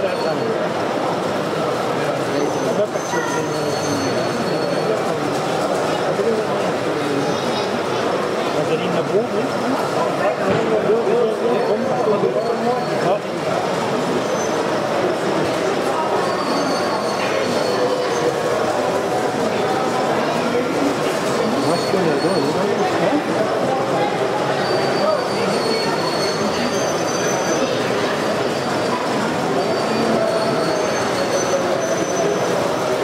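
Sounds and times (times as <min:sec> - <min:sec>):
babble of many voices: 0:00.0 - 0:33.0
faint high squeals: 0:02.4 - 0:05.0, 0:16.1 - 0:18.4, 0:24.5 - 0:33.0.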